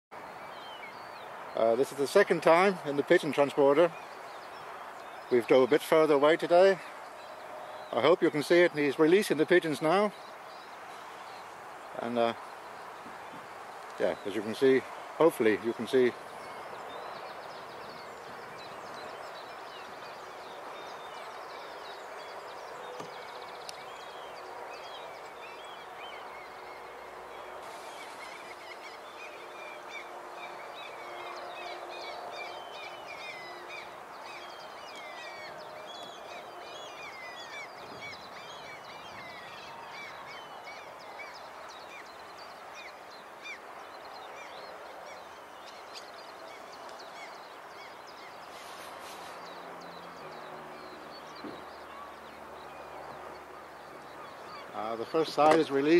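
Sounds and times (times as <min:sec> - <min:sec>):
small birds chirping: 0:00.2 - 0:55.9.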